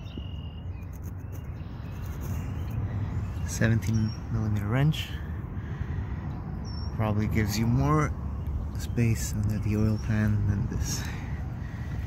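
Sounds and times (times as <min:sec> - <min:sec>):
short high bird chirp: 0:00.0 - 0:04.3
outdoor background noise: 0:00.0 - 0:12.0.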